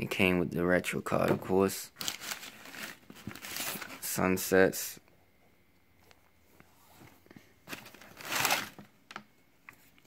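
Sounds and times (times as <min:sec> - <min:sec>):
tissue paper rustling: 0:02.0 - 0:04.1, 0:07.7 - 0:08.9.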